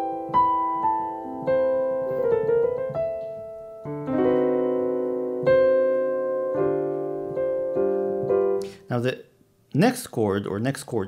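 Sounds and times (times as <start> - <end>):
piano playing jazz chords: 0.0 - 8.8.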